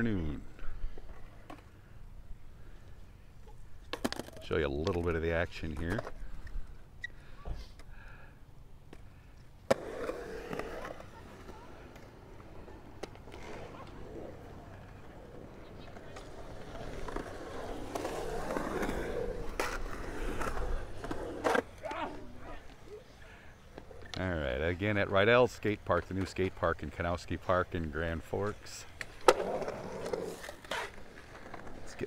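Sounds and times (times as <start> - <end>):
skateboard wheels rolling on concrete: 0.0 - 32.0.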